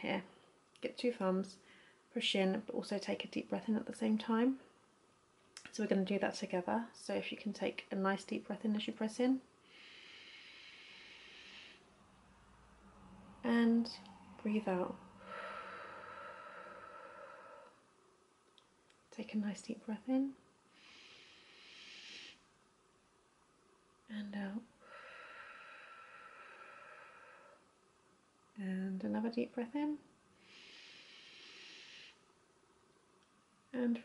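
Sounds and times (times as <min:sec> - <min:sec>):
person breathing in deeply: 0:09.6 - 0:12.0, 0:15.0 - 0:17.9, 0:20.7 - 0:22.4, 0:24.8 - 0:27.7, 0:30.4 - 0:32.3
woman exhaling softly: 0:13.9 - 0:17.8.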